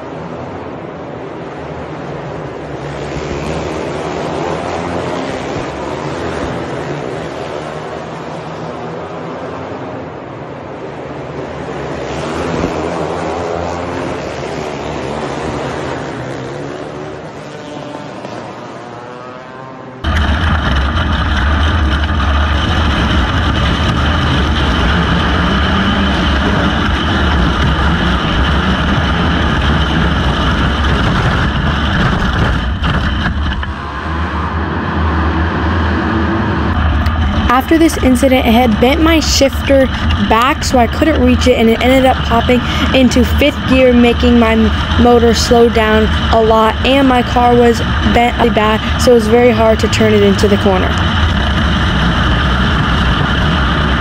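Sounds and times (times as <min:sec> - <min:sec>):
kart engines racing: 0:00.0 - 0:54.0
onboard kart engine: 0:00.0 - 0:54.0.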